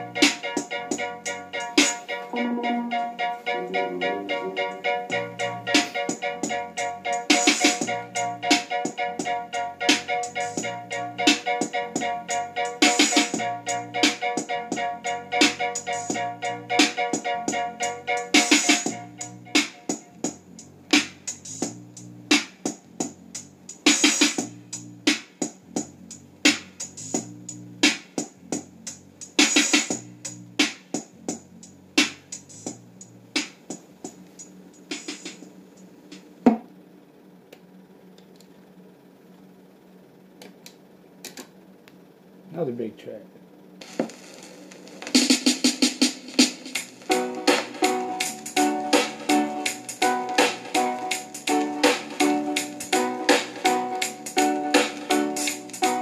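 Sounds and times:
sustained keyboard chord: 0.0 - 19.8, 47.1 - 56.0
reggae dub instrumental: 0.0 - 25.3, 43.8 - 56.0
drum beat: 0.2 - 8.7, 11.3 - 14.8, 18.3 - 32.8, 34.8 - 35.4, 43.8 - 56.0
bass line: 2.3 - 8.6, 9.2 - 23.7.

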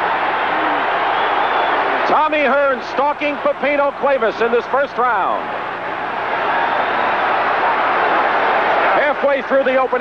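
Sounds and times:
people shouting: 0.0 - 2.2
crowd cheering: 0.0 - 10.0.

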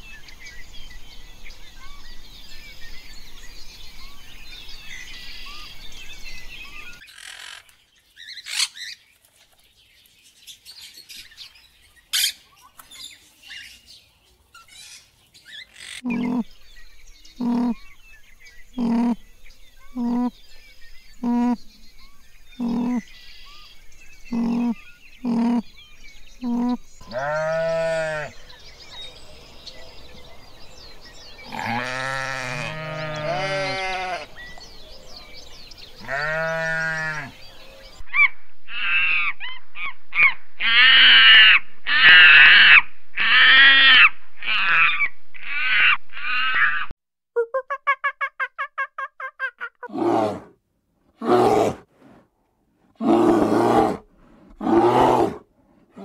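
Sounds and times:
sheep bleating: 16.1 - 16.4, 26.4 - 28.4, 31.5 - 34.4, 36.0 - 37.4.

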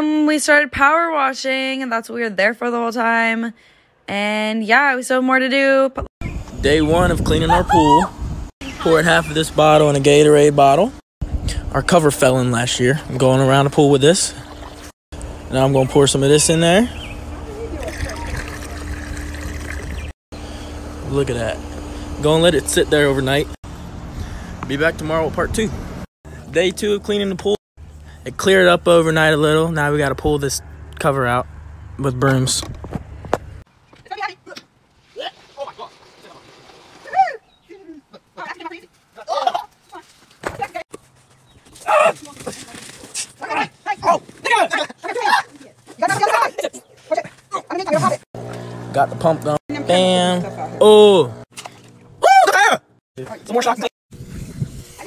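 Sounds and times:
liquid trickling into pool water: 17.8 - 20.1
people shouting: 52.2 - 52.8.

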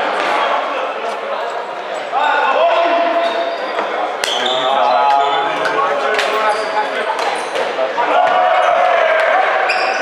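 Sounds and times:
shoes squeaking: 3.2 - 7.7.

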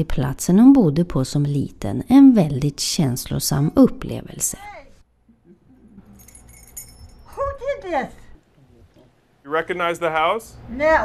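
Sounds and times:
woman speaking: 0.0 - 5.0, 7.3 - 8.4, 10.7 - 11.0
light metallic jingling: 6.0 - 8.0.

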